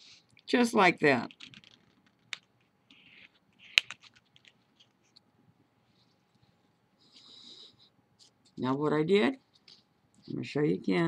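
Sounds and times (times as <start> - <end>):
paper crinkling: 1.3 - 5.2.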